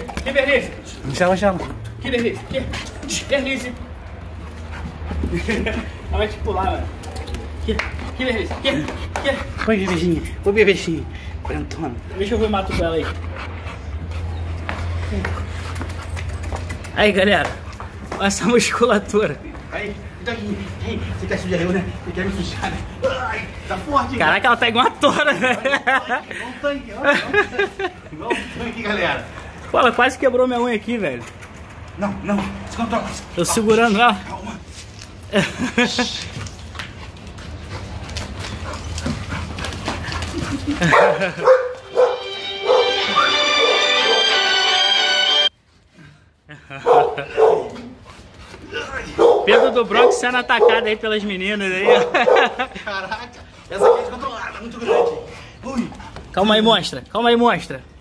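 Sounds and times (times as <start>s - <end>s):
dog panting: 0.0s - 6.1s, 8.0s - 23.7s, 36.3s - 42.9s, 46.9s - 51.0s
paw clicks on tiled floor: 6.8s - 19.8s, 30.8s - 41.9s, 51.9s - 56.4s
dogs barking and yipping: 37.0s - 44.6s, 46.8s - 52.8s, 53.6s - 55.6s
music: 41.8s - 45.5s.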